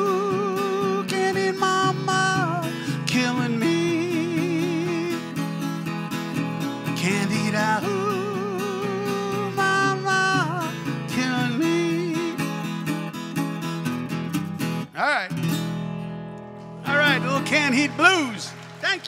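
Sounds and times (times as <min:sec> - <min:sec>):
resonator guitar playing blues: 0:00.0 - 0:18.9.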